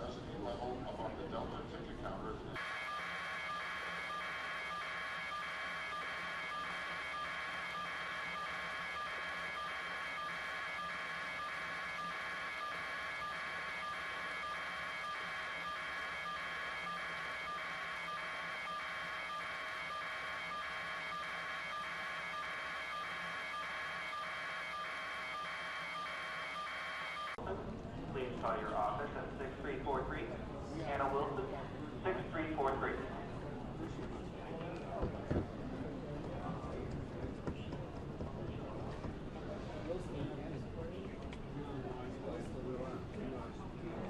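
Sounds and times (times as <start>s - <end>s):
pulsing high tone: 2.6s - 27.4s
steady electronic tones: 2.6s - 27.4s.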